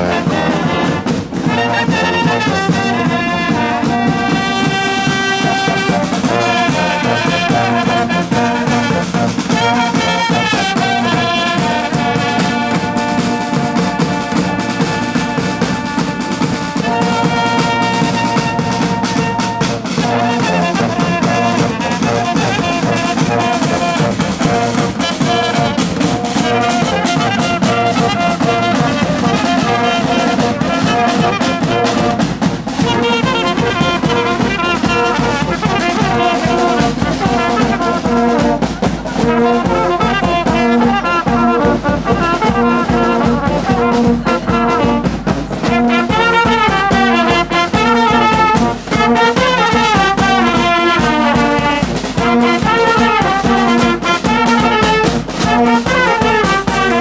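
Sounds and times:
drums: 0.0s - 57.0s
trumpets and brass horns: 0.0s - 57.0s.

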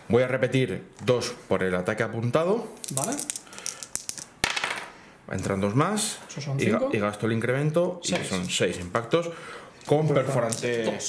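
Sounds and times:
dice shaken in hand: 2.8s - 4.8s, 10.2s - 10.9s
dice clattering on table: 2.8s - 4.9s, 9.8s - 11.0s.

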